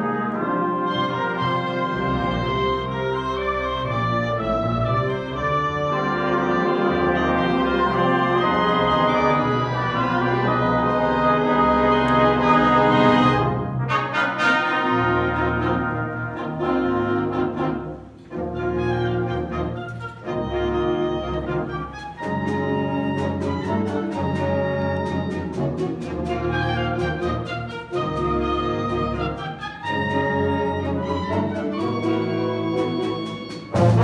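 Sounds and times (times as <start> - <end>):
concert band playing chords: 33.7 - 34.0.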